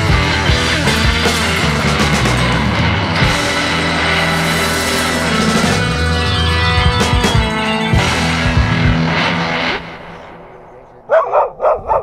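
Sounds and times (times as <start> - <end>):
dog barking: 11.1 - 12.0.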